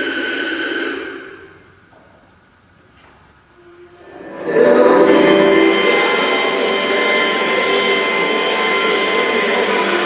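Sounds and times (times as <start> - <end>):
steady high tone: 3.6 - 10.0
music from portable radios: 5.6 - 10.0.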